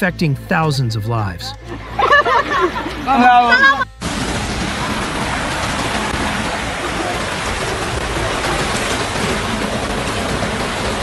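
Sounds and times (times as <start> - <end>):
floodwater rushing: 4.0 - 11.0.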